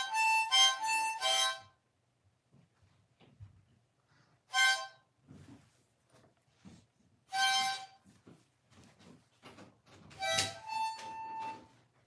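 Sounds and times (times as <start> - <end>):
harmonica notes: 0.0 - 1.8, 4.5 - 5.2, 7.3 - 8.3, 10.1 - 11.9.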